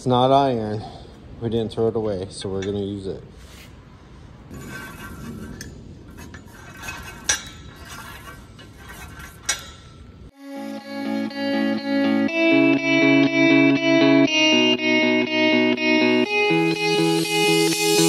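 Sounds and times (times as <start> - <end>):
plucked guitar-like music: 10.4 - 18.0.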